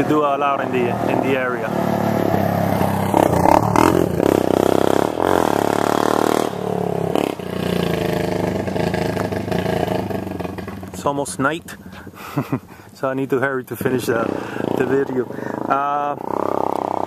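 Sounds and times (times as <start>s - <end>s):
quad bike engine revving: 0.0s - 17.0s.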